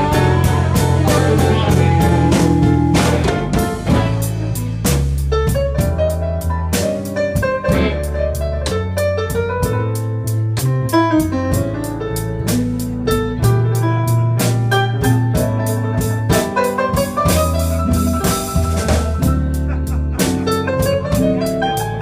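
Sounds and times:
bass: 0:00.0 - 0:22.0
drums: 0:00.0 - 0:22.0.

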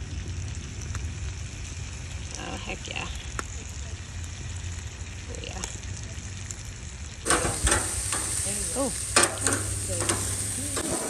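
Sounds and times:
fish sizzling in butter: 0:00.0 - 0:11.0
steady low rumble: 0:00.0 - 0:11.0.

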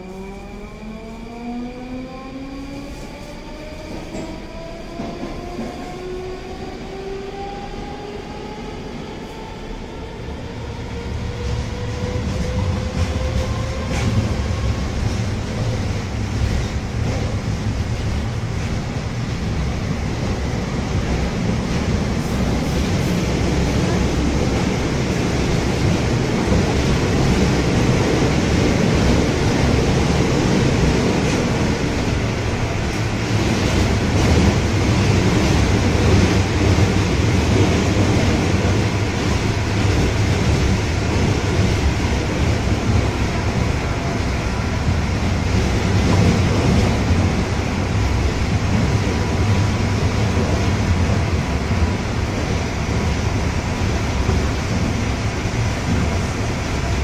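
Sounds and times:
wheels rumbling on rail: 0:02.9 - 0:57.0.

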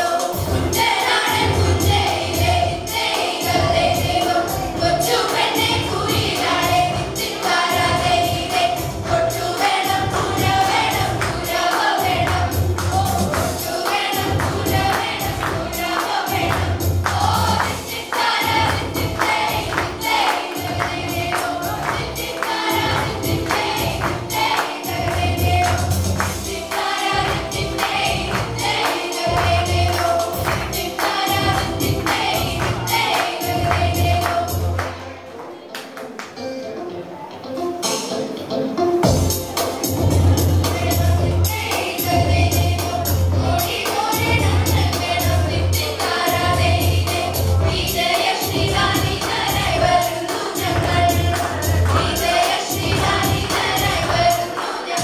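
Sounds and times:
children's choir singing: 0:00.0 - 0:36.2, 0:39.0 - 0:55.0.

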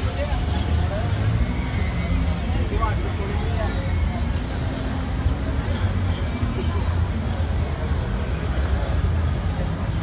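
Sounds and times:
faint crowd chatter: 0:00.0 - 0:10.0
low city rumble: 0:00.0 - 0:10.0.

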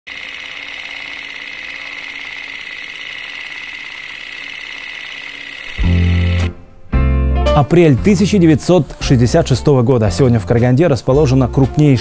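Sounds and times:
film projector whirring rattle: 0:00.1 - 0:06.5.

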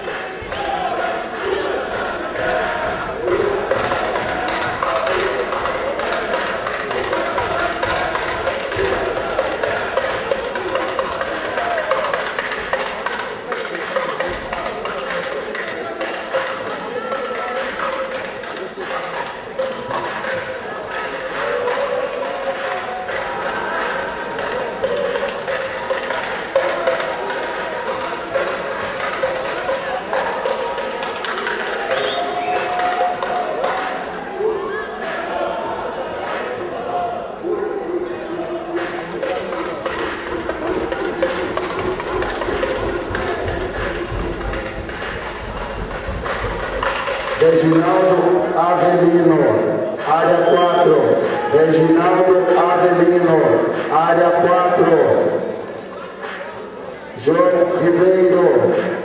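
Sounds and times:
sharp claps and knocks: 0:00.0 - 0:34.4, 0:36.2 - 0:36.8, 0:38.6 - 0:56.8, 0:57.4 - 0:59.0
background music: 0:00.0 - 0:59.0
indistinct voices and shouts: 0:00.0 - 0:59.0.

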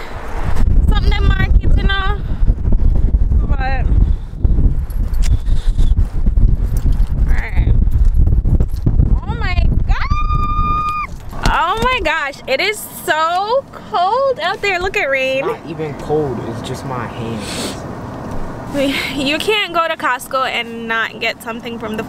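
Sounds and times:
wind buffeting microphone: 0:00.0 - 0:17.1.

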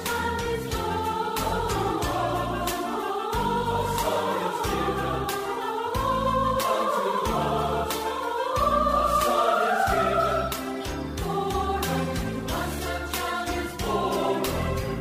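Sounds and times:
choir singing: 0:00.0 - 0:15.0
instrumental accompaniment with beat: 0:00.0 - 0:15.0.

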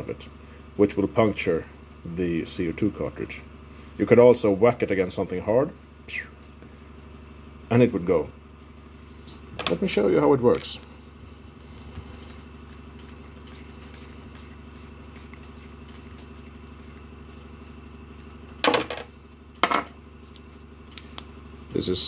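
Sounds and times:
low background hum: 0:00.0 - 0:22.0.

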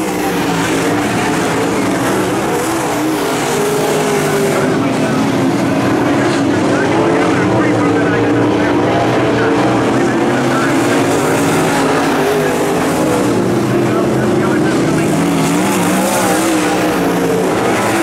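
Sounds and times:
race car engines revving: 0:00.0 - 0:18.0.

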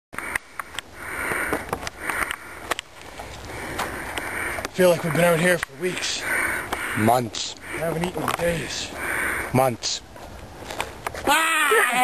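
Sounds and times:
person breathing noisily: 0:00.2 - 0:02.7, 0:03.3 - 0:04.7, 0:06.0 - 0:07.9, 0:08.8 - 0:09.5
sharp clicks: 0:00.2 - 0:02.9.

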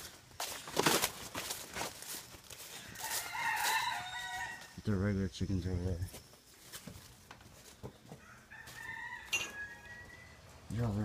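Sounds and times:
rooster crowing: 0:02.6 - 0:04.8, 0:08.1 - 0:10.5.

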